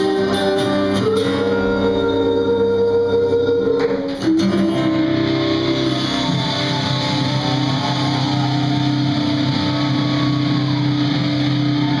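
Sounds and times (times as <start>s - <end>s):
guitars and bass ringing: 0.0s - 12.0s
rock band droning chord: 4.7s - 12.0s.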